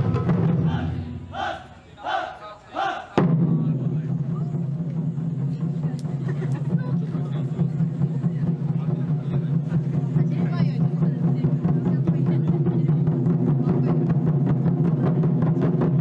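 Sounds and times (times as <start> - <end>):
festival music: 0.0 - 3.6
crowd noise: 0.0 - 16.0
group shouting rhythmically: 0.5 - 3.2.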